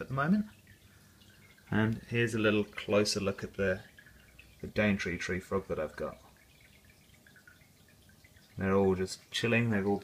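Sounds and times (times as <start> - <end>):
person speaking: 1.6 - 4.0.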